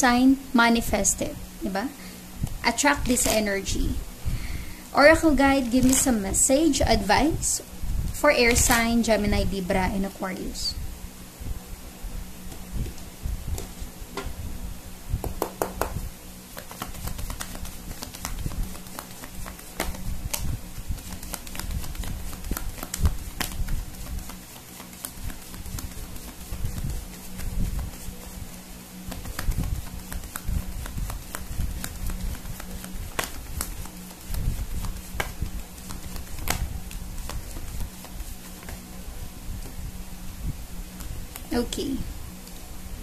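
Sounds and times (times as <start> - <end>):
steady low hum: 0.0 - 43.0
cards being shuffled: 2.4 - 3.5, 5.2 - 6.4, 8.5 - 9.0, 15.3 - 39.0, 40.9 - 41.6.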